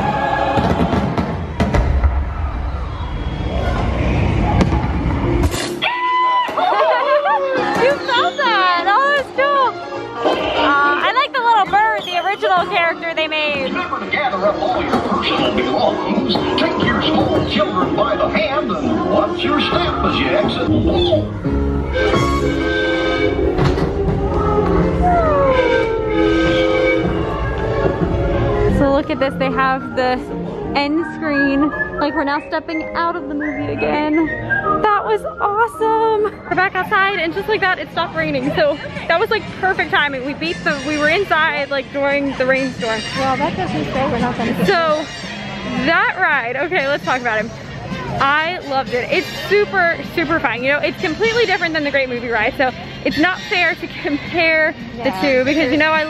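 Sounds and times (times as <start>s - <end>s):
dense rumbling effect: 0.0s - 5.6s
falling whistle-like glide: 2.3s - 4.6s
soundtrack music: 13.2s - 36.7s.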